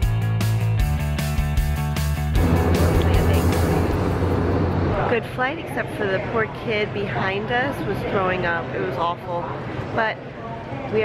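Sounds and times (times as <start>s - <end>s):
background music with a beat: 0.0s - 4.8s
steady low hum: 2.4s - 5.7s.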